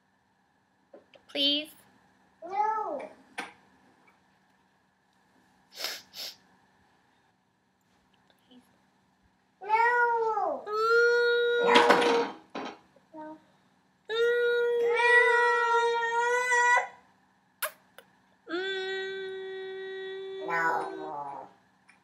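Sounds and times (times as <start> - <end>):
woman singing oooo notes: 18.5 - 21.1.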